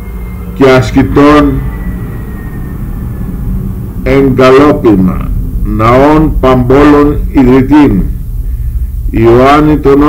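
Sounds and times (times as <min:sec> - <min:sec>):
steady low rumble: 0:00.0 - 0:10.0
thin high whine falling in pitch: 0:00.0 - 0:10.0.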